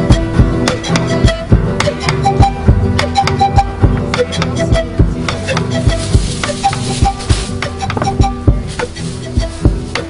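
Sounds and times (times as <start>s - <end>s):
short melody notes: 0.0s - 10.0s
low drum strikes: 3.7s - 10.0s.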